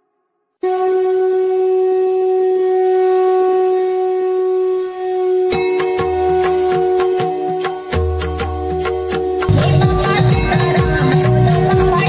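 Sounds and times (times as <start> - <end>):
wind instrument long note: 0.6 - 12.0.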